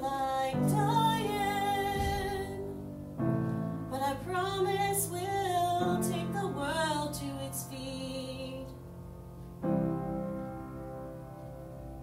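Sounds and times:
person singing slow ballad: 0.0 - 2.9
piano accompaniment: 0.0 - 12.0.

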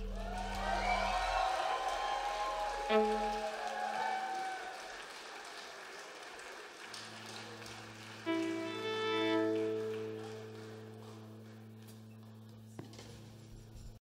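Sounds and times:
held instrument notes: 0.0 - 3.6, 7.1 - 12.4
audience applauding: 0.0 - 12.1.

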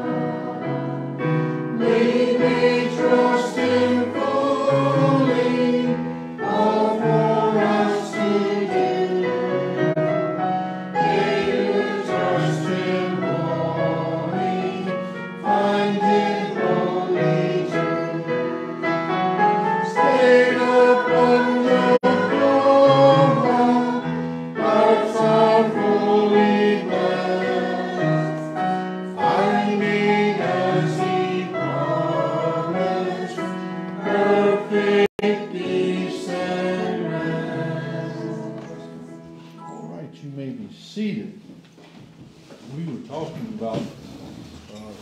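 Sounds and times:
congregation singing a hymn: 0.0 - 40.1.

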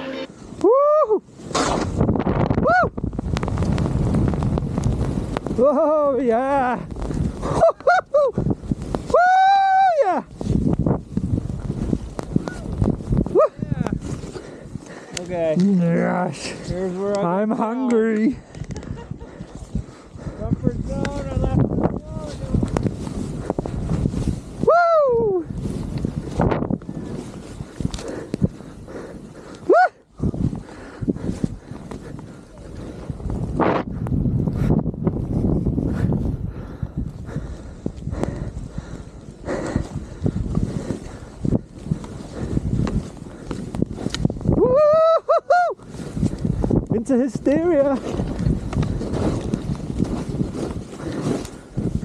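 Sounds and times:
wind buffeting microphone: 0.2 - 52.0
person whooping: 0.6 - 1.3, 2.6 - 3.0, 9.1 - 10.3, 24.6 - 25.5, 29.7 - 30.0, 44.5 - 45.8
skis running through powder snow: 3.2 - 7.7, 8.4 - 15.6, 20.8 - 24.7, 25.5 - 29.5, 38.3 - 44.6, 45.8 - 52.0.

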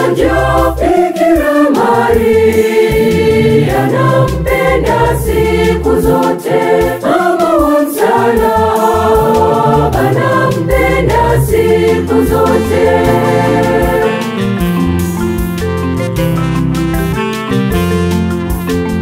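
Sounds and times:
bass: 0.0 - 1.1, 1.8 - 7.2, 8.1 - 19.0
gospel choir singing: 0.0 - 14.8
organ: 8.2 - 19.0.

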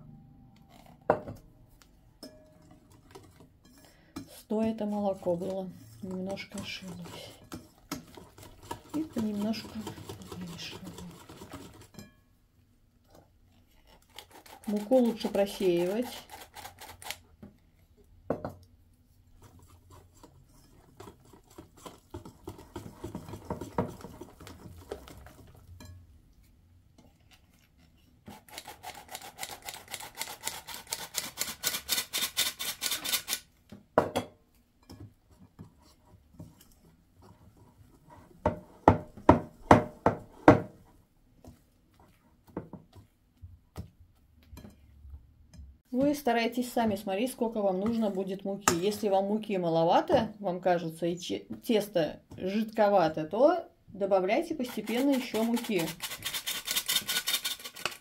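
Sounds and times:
whisk beating batter in bowl: 2.7 - 12.1, 13.6 - 17.2, 19.3 - 26.0, 28.2 - 33.4, 46.8 - 49.1, 54.1 - 58.0
flour sifter rasping: 4.4 - 12.0, 14.3 - 17.2, 54.5 - 58.0.

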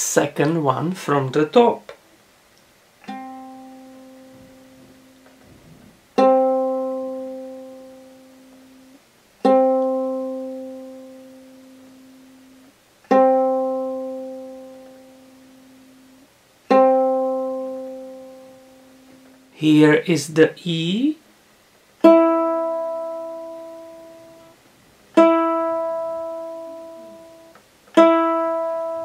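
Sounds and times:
ukulele string plucked: 3.0 - 8.8, 9.4 - 15.8, 25.2 - 29.0.

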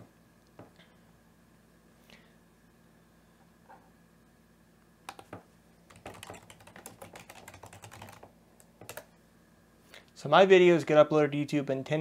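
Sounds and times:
keyboard typing: 5.1 - 9.1.

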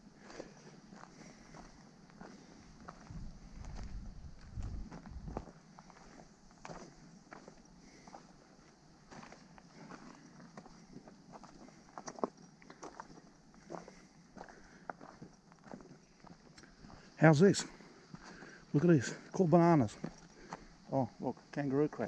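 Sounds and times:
footsteps crunching on dirt: 0.0 - 21.6.

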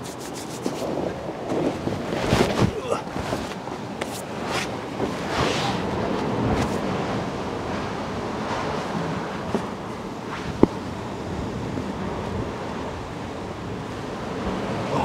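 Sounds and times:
sea washing against rocks: 0.0 - 15.0
wind on microphone: 0.0 - 15.0.

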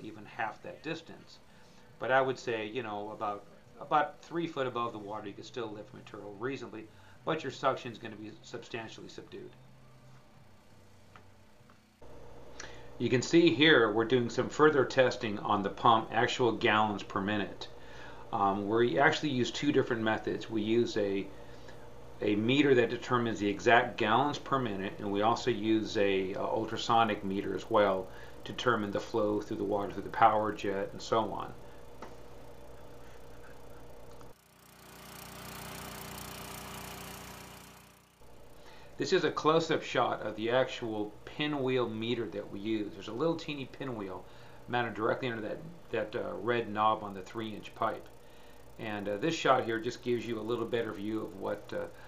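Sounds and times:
small gasoline engine running: 15.6 - 39.0, 43.0 - 52.0.

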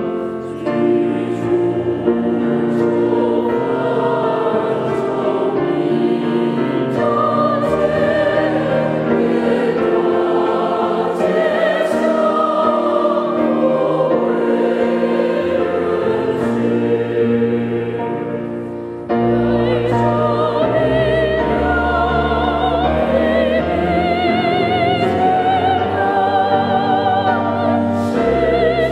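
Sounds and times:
church choir singing a hymn: 0.0 - 28.9.

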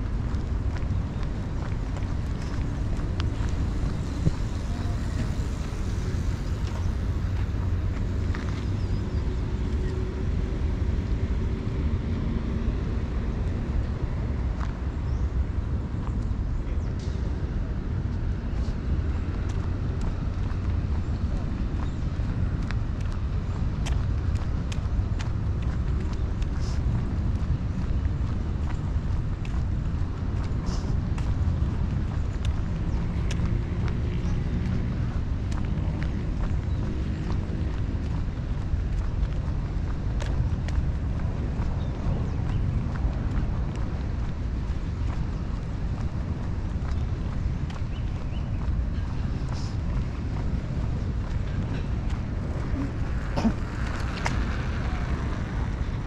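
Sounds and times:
steady low rumble: 0.0 - 56.0
faint voices: 4.3 - 6.8, 48.6 - 56.0.

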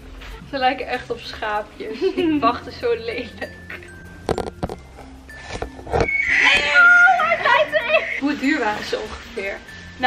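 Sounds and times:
horse whinnying: 5.9 - 7.4.

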